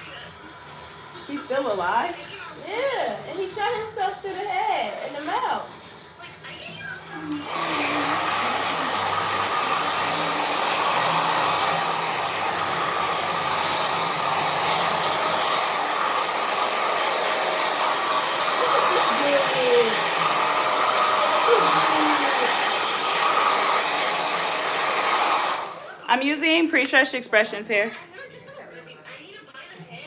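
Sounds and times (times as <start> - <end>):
hair dryer blowing: 7.2 - 26.9.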